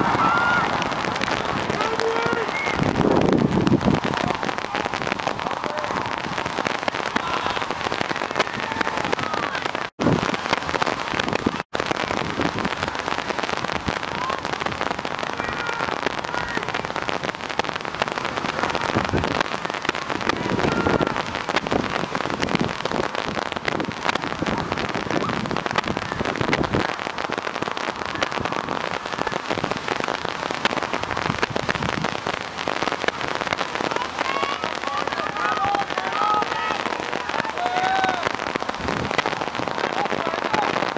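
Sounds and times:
distant shouts: 0.0 - 3.0, 4.0 - 10.8, 14.0 - 17.2, 18.2 - 22.1, 32.7 - 38.7
wind buffeting microphone: 0.0 - 40.9.

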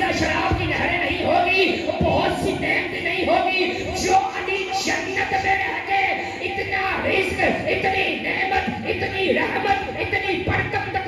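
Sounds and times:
man speaking over pa system: 0.0 - 11.0.

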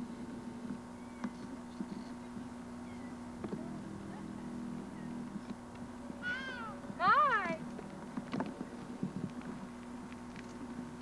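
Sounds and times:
steady low hum: 0.0 - 11.0
high-pitched vocal calls: 6.2 - 7.3.

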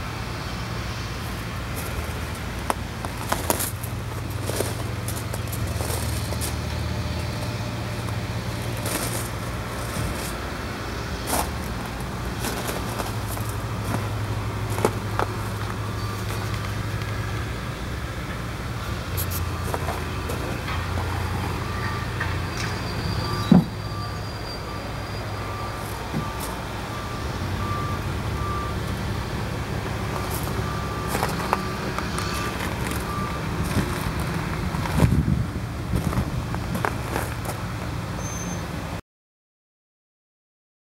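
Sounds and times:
engine humming: 0.0 - 39.0
reversing beeper: 12.8 - 16.8, 19.4 - 35.0.

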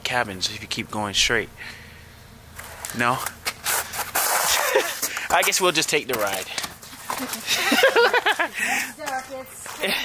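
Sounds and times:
man speaking: 0.0 - 1.6, 2.9 - 3.3, 5.3 - 6.6
man laughing breathily: 4.5 - 5.3, 7.3 - 9.0, 9.8 - 10.0.

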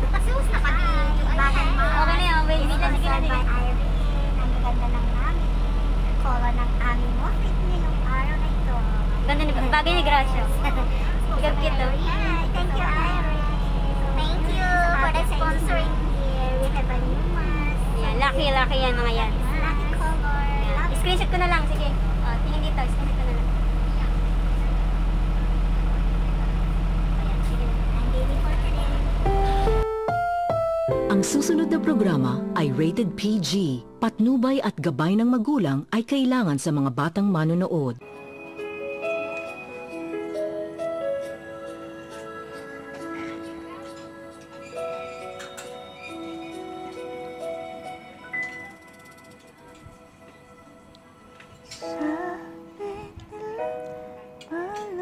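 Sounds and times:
bus engine droning: 0.0 - 34.0
women talking: 9.2 - 12.0, 18.0 - 19.4.

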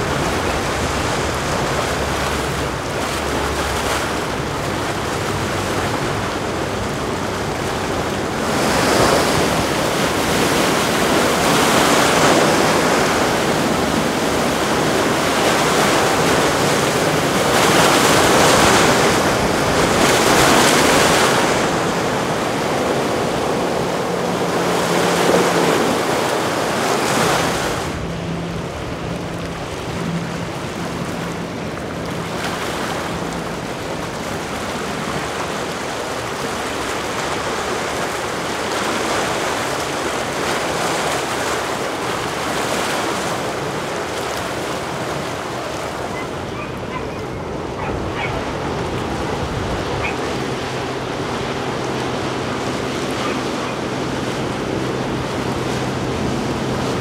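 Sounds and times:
boat wake rushing: 0.0 - 57.0
wind on microphone: 0.0 - 57.0.

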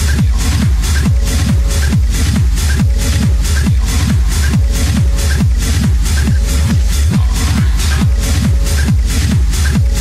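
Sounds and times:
techno kick drum: 0.0 - 10.0.

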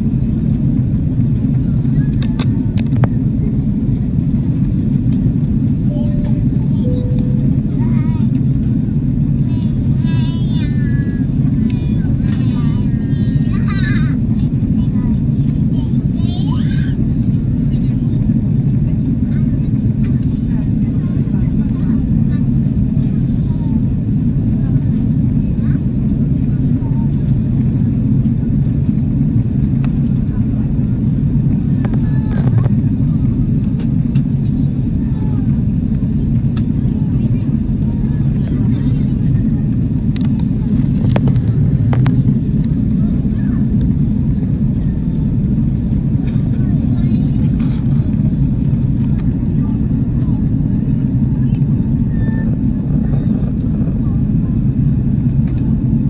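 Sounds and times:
airliner cabin engine rumble: 0.0 - 56.0
faint voices: 0.2 - 56.0.

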